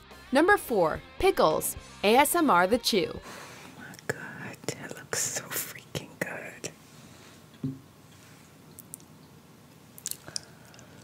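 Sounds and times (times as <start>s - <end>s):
woman whispering: 3.8s - 6.8s.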